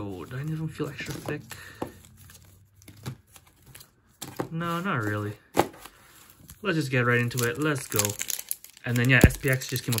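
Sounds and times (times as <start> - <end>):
foil wrappers crinkling: 0.0 - 4.0, 4.6 - 10.0.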